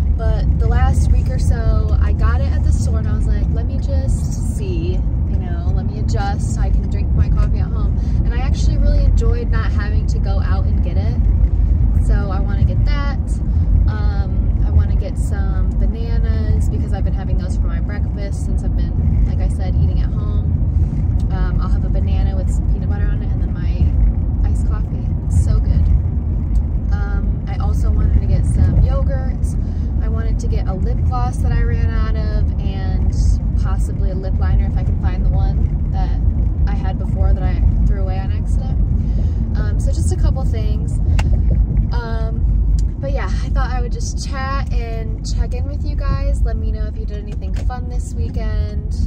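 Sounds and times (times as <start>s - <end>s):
woman talking: 0.0s - 11.4s, 12.0s - 20.6s, 21.2s - 25.9s, 26.9s - 49.0s
car interior road and engine rumble: 0.0s - 49.0s.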